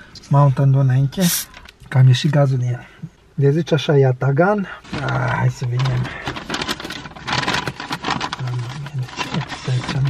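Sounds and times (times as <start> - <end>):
food packaging rustling: 4.8 - 10.0.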